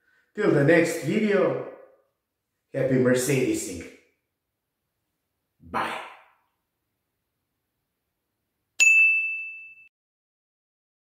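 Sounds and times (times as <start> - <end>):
bright bell-like ding: 8.8 - 9.9.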